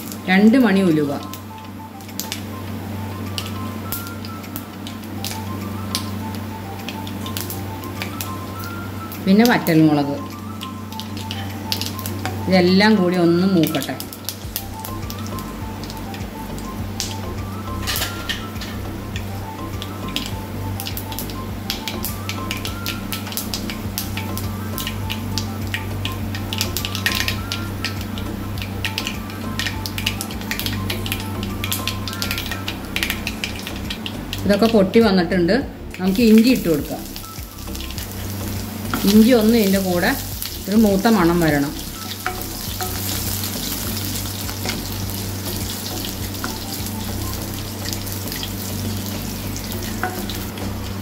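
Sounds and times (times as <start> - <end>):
seeds spluttering in hot oil: 0.0 - 35.1, 35.9 - 51.0
background music: 0.0 - 51.0.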